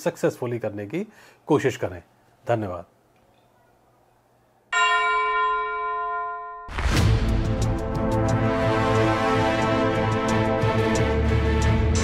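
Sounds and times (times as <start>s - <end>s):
bell chime ringing: 4.7s - 6.7s.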